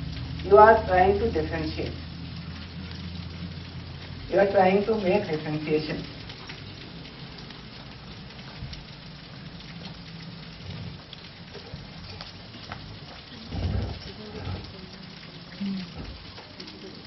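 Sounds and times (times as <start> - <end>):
faint ticks: 6.0 - 17.0.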